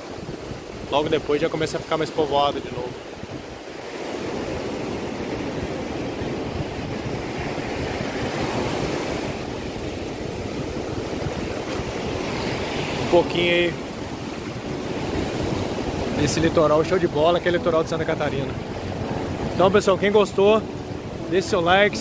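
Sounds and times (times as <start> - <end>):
ocean surf breaking on beach: 0.0 - 22.0.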